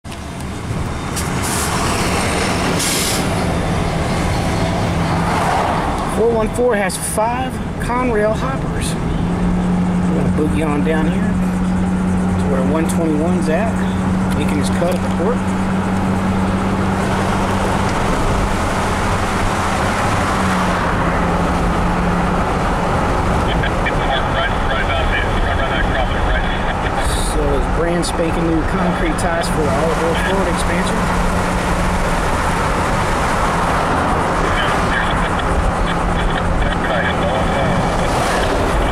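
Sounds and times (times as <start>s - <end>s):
diesel locomotive passing: 0.1s - 6.1s.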